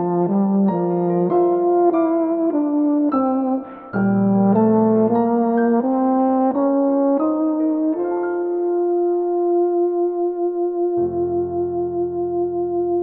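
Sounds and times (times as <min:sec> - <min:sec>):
brass instrument melody: 0:00.0 - 0:13.0
piano: 0:00.0 - 0:13.0.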